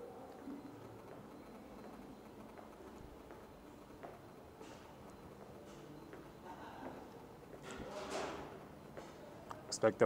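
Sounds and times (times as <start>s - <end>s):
faint footsteps: 0.4s - 7.7s, 8.9s - 9.3s.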